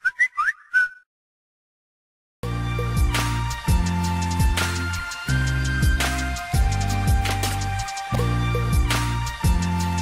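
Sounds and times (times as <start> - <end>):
upward-sliding whistled chirps: 0.0 - 1.1.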